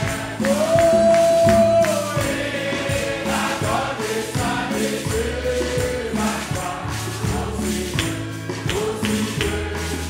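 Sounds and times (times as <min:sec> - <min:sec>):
congregation singing a hymn: 0:00.0 - 0:10.0
steady percussion beat: 0:00.0 - 0:10.0.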